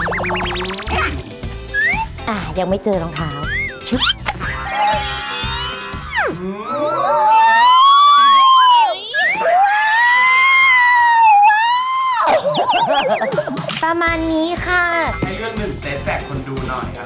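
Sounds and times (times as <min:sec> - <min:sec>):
background music: 0:00.0 - 0:08.6, 0:11.4 - 0:17.0
woman screaming in delight: 0:04.6 - 0:12.6.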